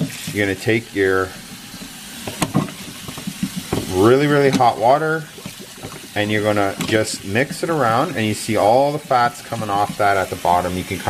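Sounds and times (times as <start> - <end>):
water spraying and splashing: 0.0 - 11.0.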